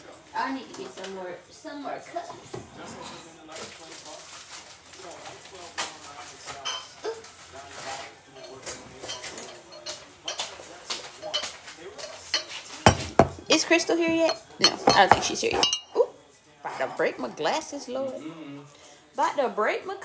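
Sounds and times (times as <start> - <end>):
dishes clinking and knocking: 6.5 - 7.0, 8.3 - 16.0
glass mug set down: 12.9 - 13.5.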